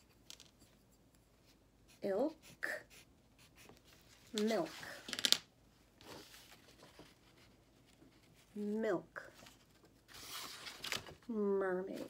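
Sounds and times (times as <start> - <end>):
woman speaking: 2.0 - 2.9, 4.3 - 5.0, 8.5 - 9.4, 11.3 - 12.0.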